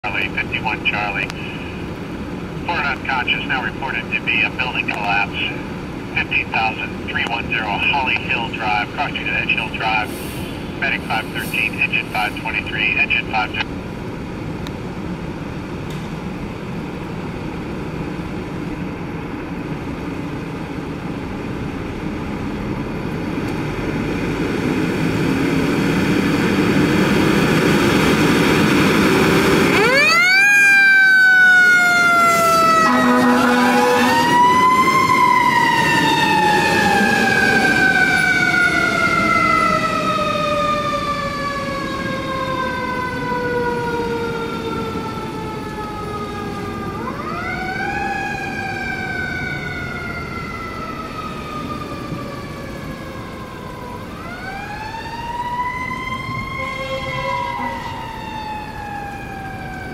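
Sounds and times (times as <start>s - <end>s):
fire engine diesel engine: 0.0s - 59.9s.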